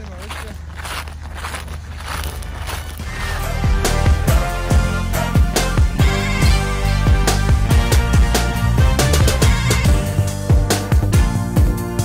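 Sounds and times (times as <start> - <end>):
footsteps crunching on stubble: 0.0 - 4.3.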